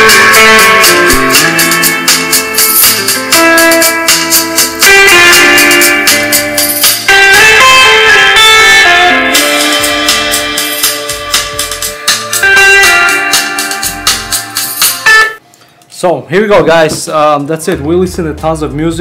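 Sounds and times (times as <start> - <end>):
guitar music through car speaker: 0.0 - 15.4.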